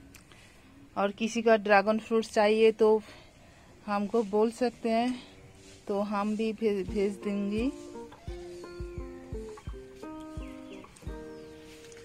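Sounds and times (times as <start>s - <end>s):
low bass thumps: 6.8s - 11.3s
plucked string notes: 6.8s - 12.0s.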